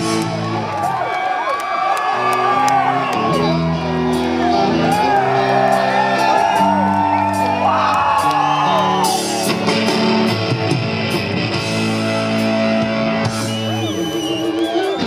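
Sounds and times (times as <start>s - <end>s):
southern rock band playing: 0.0s - 1.3s, 2.0s - 15.0s
audience whooping and shouting: 0.0s - 10.3s, 11.6s - 15.0s.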